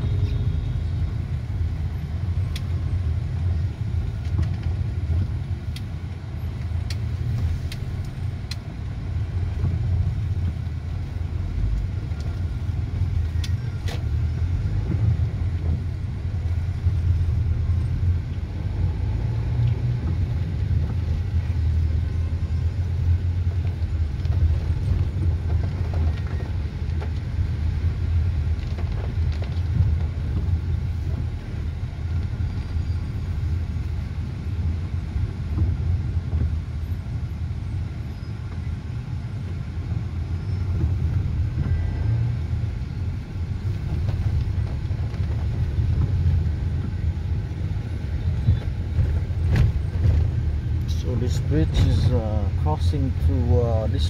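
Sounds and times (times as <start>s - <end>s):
car engine and tyres on wet road: 0.0s - 54.0s.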